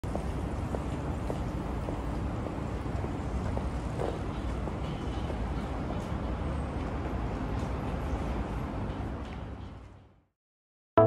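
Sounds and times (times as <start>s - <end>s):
road traffic rumble: 0.1s - 10.1s.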